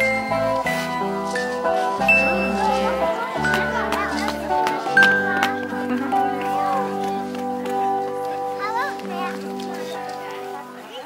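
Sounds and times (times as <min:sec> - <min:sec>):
sustained chord music: 0:00.0 - 0:10.9
child's voice: 0:03.6 - 0:07.3, 0:08.5 - 0:10.2.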